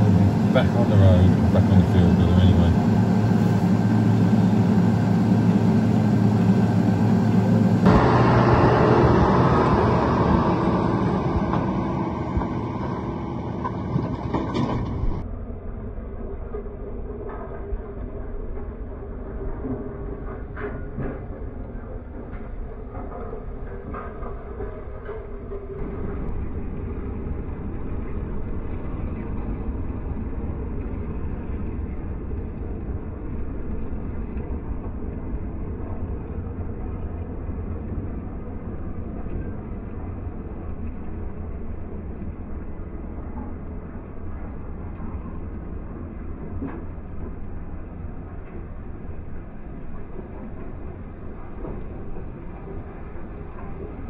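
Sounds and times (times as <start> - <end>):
tractor engine rumble: 0.0 - 15.3, 16.4 - 54.0.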